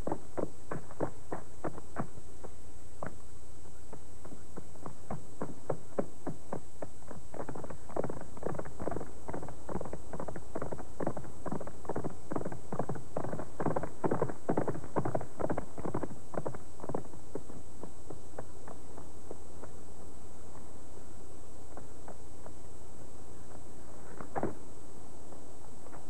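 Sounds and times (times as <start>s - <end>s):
horse hoofbeats: 0.0s - 20.7s, 21.7s - 24.6s.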